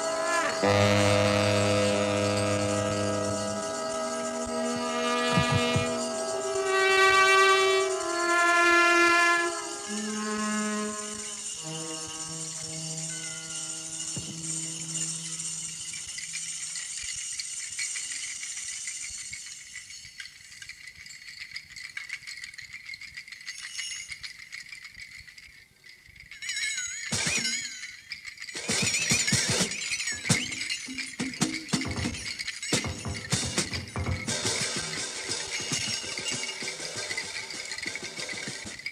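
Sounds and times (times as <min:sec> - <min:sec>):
cymbal shimmer: 0:00.0 - 0:18.7, 0:28.6 - 0:38.9
clattering percussion: 0:00.0 - 0:38.9
jazz orchestra sustained chords: 0:00.6 - 0:11.4.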